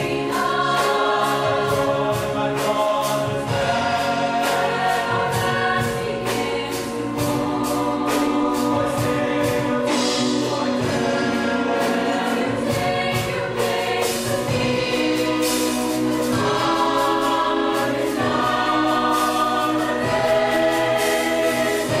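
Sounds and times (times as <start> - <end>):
choir singing held chords: 0.0 - 22.0
drum kit: 0.0 - 22.0.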